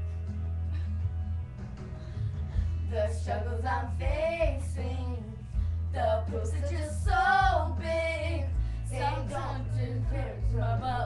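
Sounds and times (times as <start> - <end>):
low musical accompaniment: 0.0 - 11.0
young female voice singing: 2.9 - 5.3, 5.9 - 11.0.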